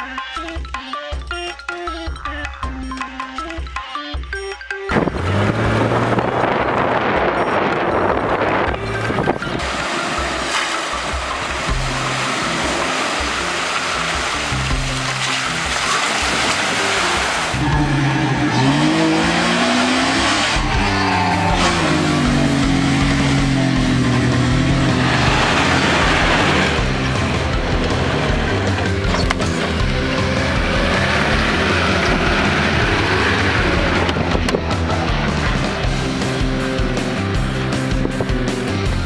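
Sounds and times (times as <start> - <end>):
background music: 0.0 - 39.0
engine revving: 4.9 - 39.0.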